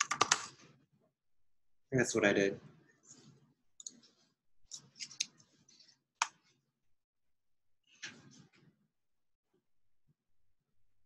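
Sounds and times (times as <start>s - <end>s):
computer keys and mouse clicks: 0.0s - 0.6s.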